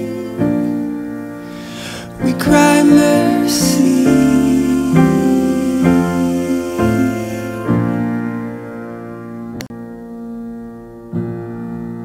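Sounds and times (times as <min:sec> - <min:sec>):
slow piano chords: 0:00.0 - 0:12.0.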